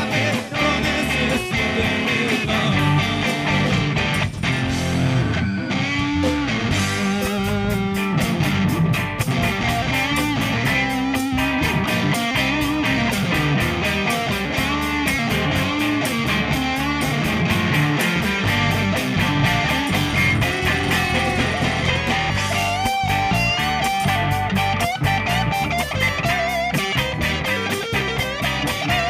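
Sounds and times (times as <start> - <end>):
live rock band playing: 0.0 - 29.0.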